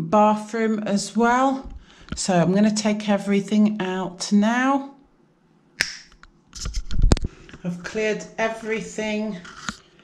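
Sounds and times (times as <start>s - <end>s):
finger snap: 5.8s - 6.2s.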